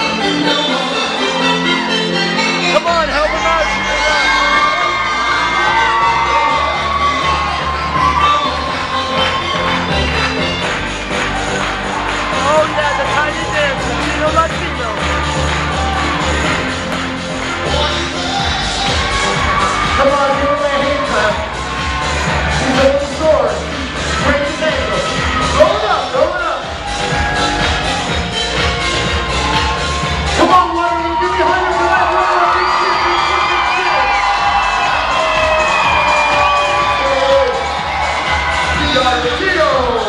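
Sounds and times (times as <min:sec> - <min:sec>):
loud music from sound system: 0:00.0 - 0:40.0
recorded song playing loudly: 0:00.0 - 0:40.0
crowd cheering: 0:02.8 - 0:40.0.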